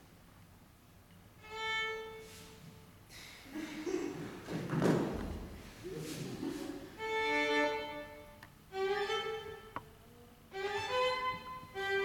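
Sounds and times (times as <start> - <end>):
violin sustained bowed note: 1.4 - 2.9, 7.0 - 12.0.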